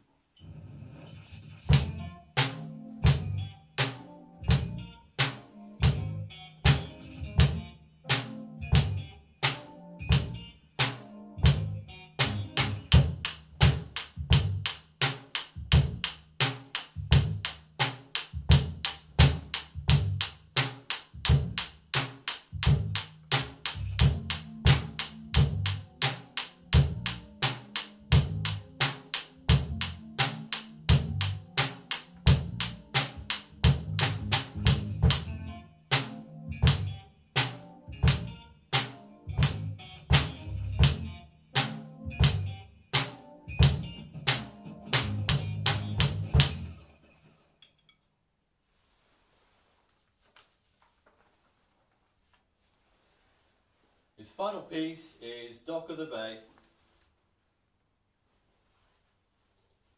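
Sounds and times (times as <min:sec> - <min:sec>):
acoustic drum kit groove: 0:01.5 - 0:46.8.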